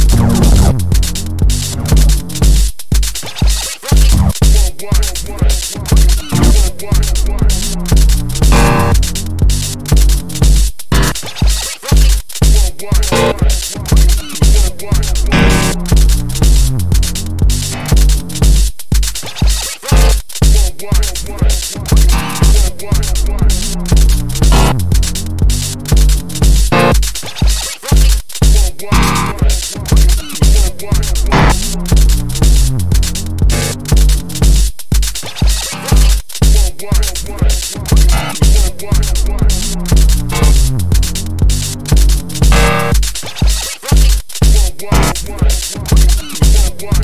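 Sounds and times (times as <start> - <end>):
distorted kick drum: 0.0 - 47.0
electronic dance music: 0.0 - 47.0
fast hi-hats: 0.0 - 47.0
scratch-like chirps: 3.1 - 4.4, 8.6 - 12.4, 19.0 - 20.4, 26.7 - 28.4, 33.0 - 34.4, 35.1 - 36.4, 41.1 - 44.4.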